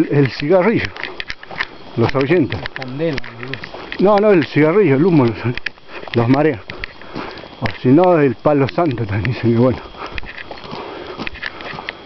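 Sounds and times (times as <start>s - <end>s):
footsteps crunching on dirt road: 0.0s - 12.0s
breathing close to microphone: 5.8s - 7.6s, 9.8s - 12.0s.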